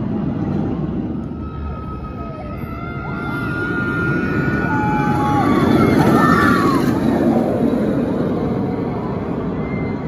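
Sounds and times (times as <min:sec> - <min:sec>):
roller coaster train rumbling: 0:00.0 - 0:10.0.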